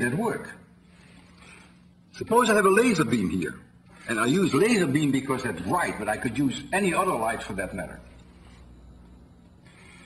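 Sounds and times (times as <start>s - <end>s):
faint low hum: 0.0s - 10.0s.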